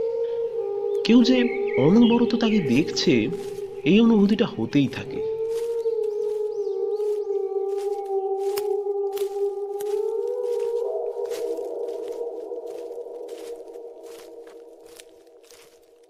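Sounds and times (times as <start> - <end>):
wavering pitched drone: 0.0 - 16.0.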